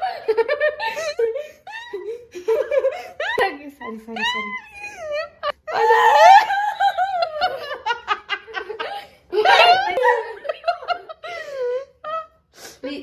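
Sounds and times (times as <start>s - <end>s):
woman laughing hard: 0.0s - 12.3s.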